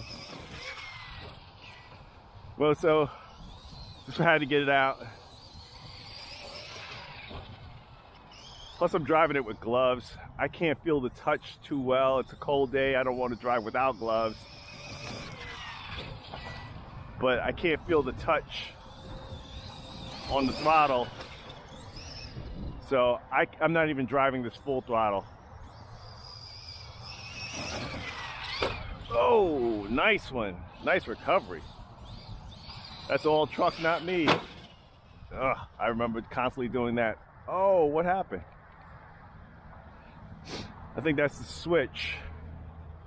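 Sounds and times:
rc truck motor whirring: 0:00.0 - 0:22.9, 0:23.7 - 0:35.8.

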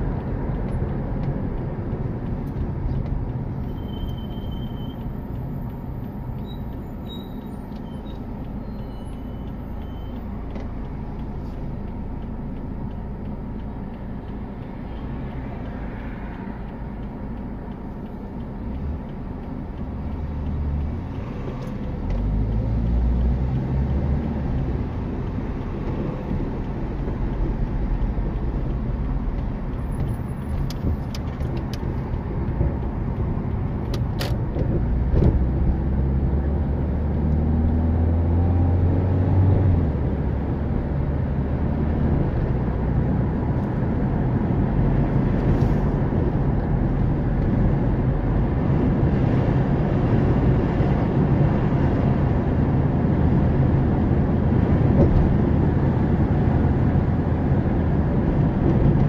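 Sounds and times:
sharp clicks: 0:00.0 - 0:35.6
car engine and tyre rumble: 0:00.0 - 0:59.0.

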